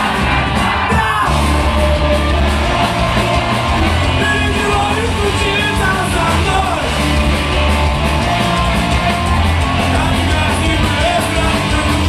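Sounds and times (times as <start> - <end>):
punk rock band playing live: 0.0 - 12.0
singer shouting into microphone: 0.8 - 1.4.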